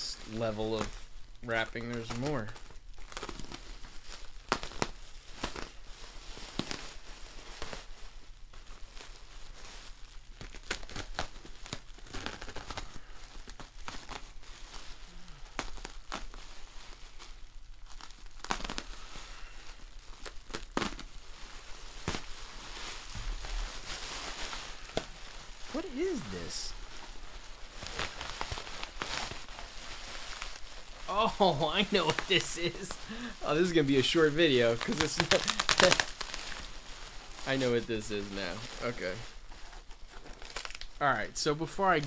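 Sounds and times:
bubble wrap crinkling and tearing: 0.0 - 42.0
sharp crackles: 0.0 - 42.0.

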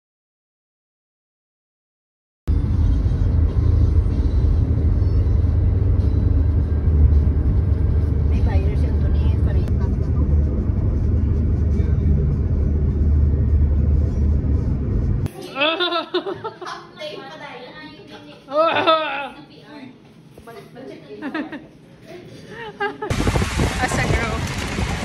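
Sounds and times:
car engine and tyre rumble: 2.5 - 15.3.

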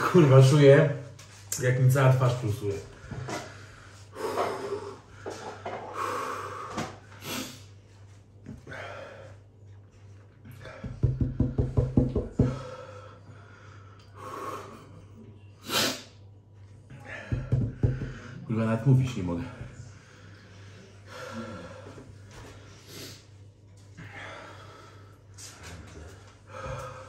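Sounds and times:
man breathing hard: 2.9 - 7.7, 8.5 - 9.5, 10.4 - 15.0, 16.9 - 18.5, 19.8 - 27.0.

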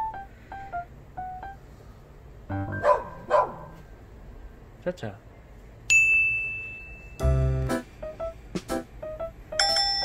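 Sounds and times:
bright bell ding: 5.9 - 7.2, 9.6 - 10.0.

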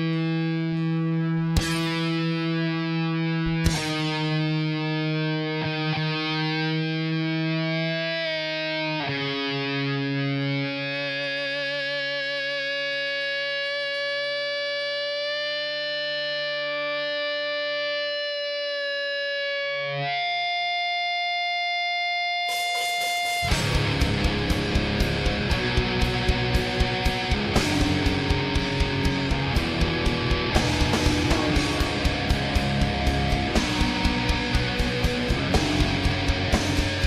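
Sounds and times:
distorted electric guitar: 0.0 - 37.0.

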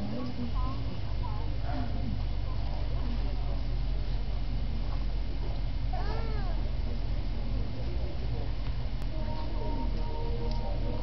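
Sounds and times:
steady low rumble: 6.6 - 11.0.

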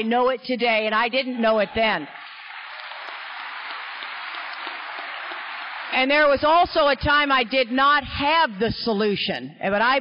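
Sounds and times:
audience applauding: 1.3 - 7.8.

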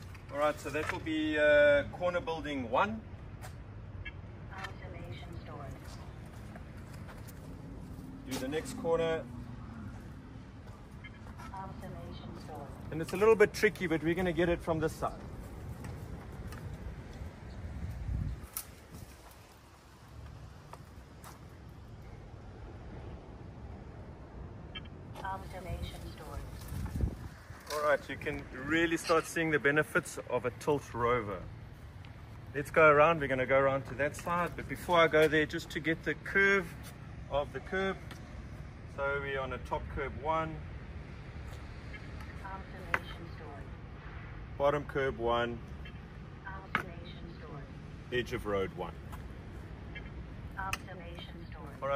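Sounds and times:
low outdoor rumble: 0.0 - 51.9
leaves and branches rustling: 5.1 - 23.8, 25.1 - 37.4
twigs snapping: 18.4 - 19.4.

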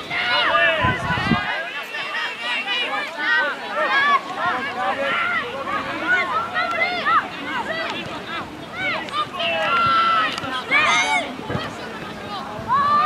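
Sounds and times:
young voices shouting: 0.0 - 13.0.

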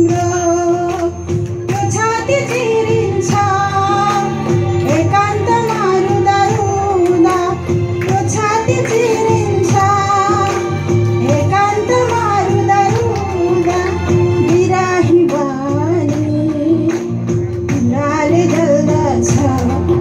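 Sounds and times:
accompanying music with steady beat: 0.0 - 20.0
woman singing into a microphone: 0.0 - 20.0.

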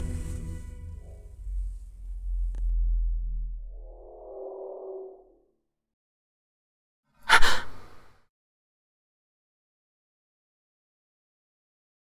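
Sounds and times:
sharp breathy gasp: 7.2 - 8.2.

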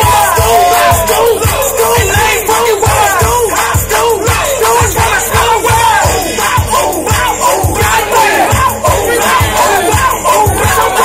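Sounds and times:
crowd hollering and shouting: 0.0 - 11.0
hip-hop music with heavy bass: 0.0 - 11.0.

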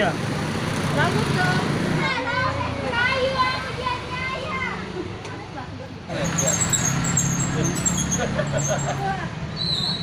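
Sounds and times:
passing motorbike traffic hum: 0.0 - 10.0
children chattering and calling: 0.8 - 9.5.

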